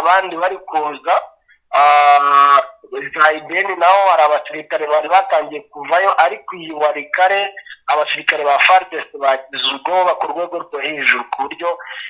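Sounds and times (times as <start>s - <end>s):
man speaking: 0.0s - 12.0s
man holding a vowel: 1.7s - 4.1s.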